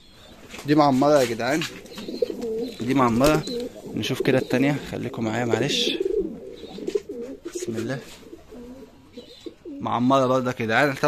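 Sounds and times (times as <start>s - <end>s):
pigeons cooing: 0.0s - 10.2s.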